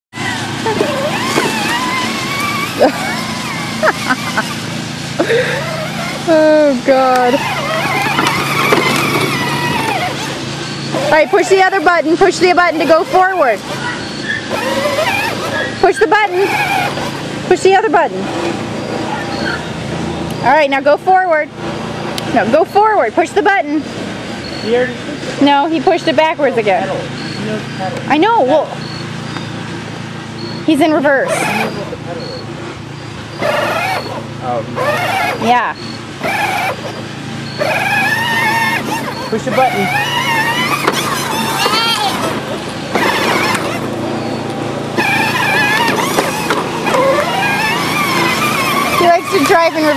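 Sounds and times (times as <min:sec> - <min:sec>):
electric toy car motor whining: 0:00.1 - 0:18.0, 0:30.8 - 0:32.0, 0:33.3 - 0:49.9.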